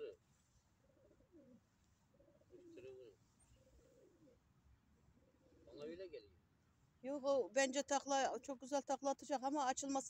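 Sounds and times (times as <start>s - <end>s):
pigeons cooing: 0.8s - 4.5s, 5.2s - 6.3s.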